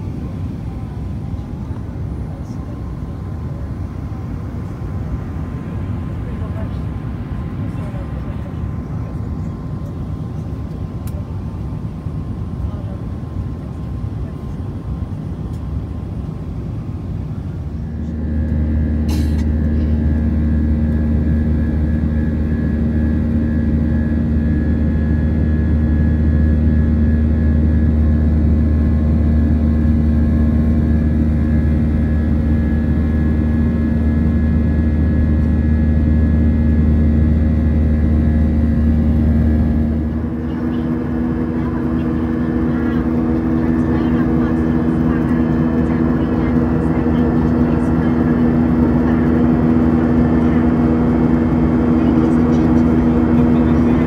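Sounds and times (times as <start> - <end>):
airliner cabin engine drone: 0.0 - 54.0.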